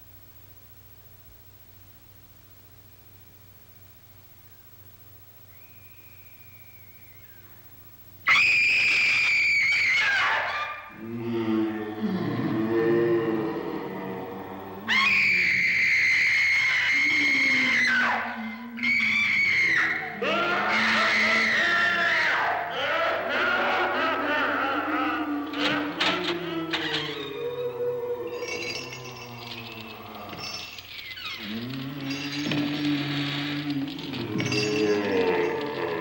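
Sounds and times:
ghostly moans: 0:10.9 - 0:16.0, 0:16.8 - 0:36.0
woman screaming: 0:14.9 - 0:29.2.

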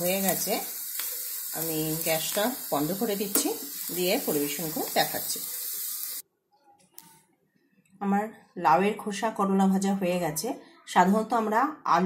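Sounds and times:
vegetables sizzling in oil: 0:00.0 - 0:06.2.

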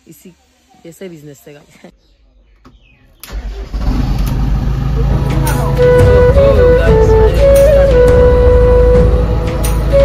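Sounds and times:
diesel engine starting and idling: 0:03.2 - 0:10.0.

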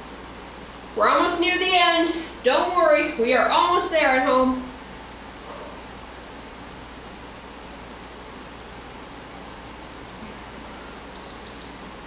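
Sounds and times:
ventilation hum: 0:00.0 - 0:12.0
high beeps from timer: 0:11.2 - 0:11.8.

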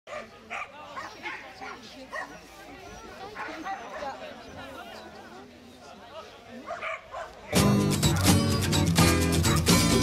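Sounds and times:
dogs barking: 0:00.1 - 0:02.5, 0:03.2 - 0:04.2, 0:06.6 - 0:07.5
people chatting: 0:00.2 - 0:08.6.

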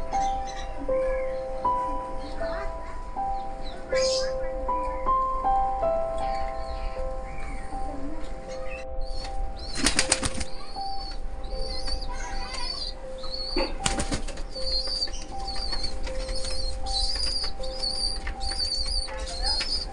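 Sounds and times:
pigeons flapping wings: 0:09.8 - 0:10.5.

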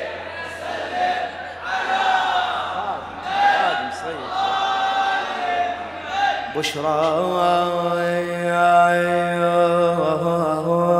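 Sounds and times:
man chanting unaccompanied: 0:06.4 - 0:10.9.

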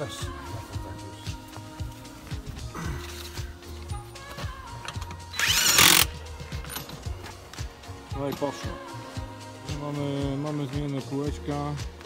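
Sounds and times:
music with steady beat: 0:00.0 - 0:12.0
power tool burst: 0:05.4 - 0:06.1.

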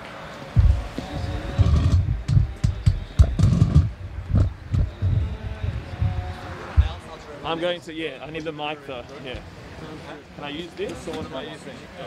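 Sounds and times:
wind buffeting microphone: 0:00.6 - 0:07.2.

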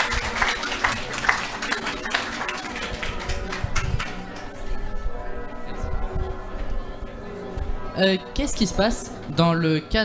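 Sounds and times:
audience clapping: 0:00.0 - 0:04.6.

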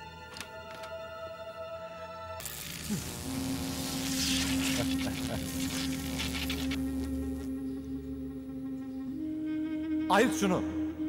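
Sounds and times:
electroshock device buzzing: 0:02.4 - 0:07.5.

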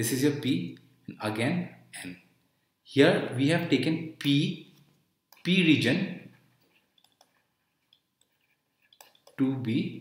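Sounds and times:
stylus clicking on pen tablet: 0:06.6 - 0:09.4.

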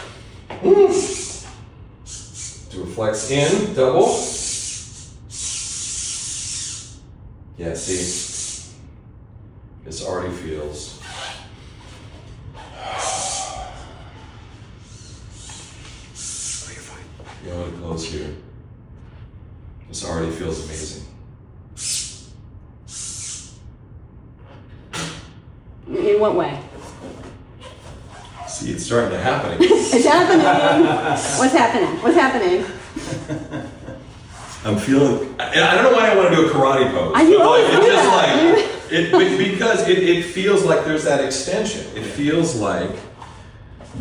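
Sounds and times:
breathy hiss: 0:00.9 - 0:07.0, 0:07.8 - 0:08.8, 0:12.6 - 0:17.2, 0:21.8 - 0:23.6
man breathing out hard: 0:12.6 - 0:16.6.

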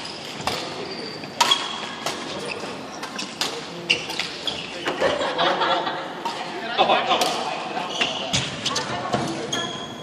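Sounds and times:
shoes squeaking on wooden court: 0:00.0 - 0:05.1, 0:07.8 - 0:10.0
rackets hitting shuttlecock: 0:01.4 - 0:05.0, 0:07.1 - 0:09.4.

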